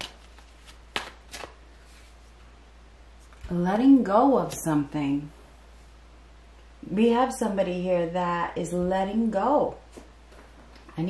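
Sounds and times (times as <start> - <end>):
cards shuffling: 0.0 - 2.1.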